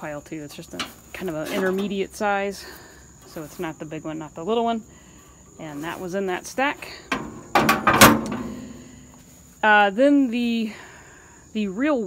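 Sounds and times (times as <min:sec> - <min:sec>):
metal bins clanking: 0:06.9 - 0:09.3.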